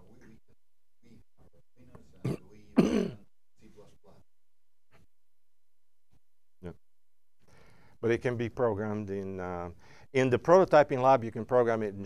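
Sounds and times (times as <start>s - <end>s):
person clearing throat: 2.2s - 3.3s.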